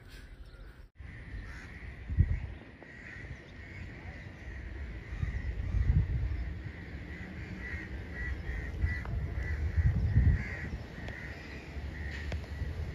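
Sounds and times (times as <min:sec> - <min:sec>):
crows cawing: 0:01.0 - 0:12.7.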